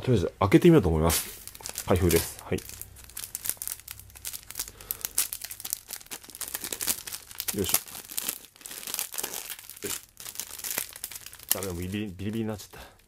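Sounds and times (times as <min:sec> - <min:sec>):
plastic film crinkling and tearing: 0:01.1 - 0:13.0.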